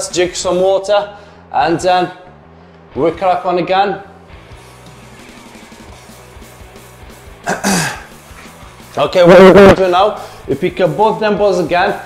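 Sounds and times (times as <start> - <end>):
quiet music with low tones: 0.0 - 12.0
man coughing: 7.4 - 8.2.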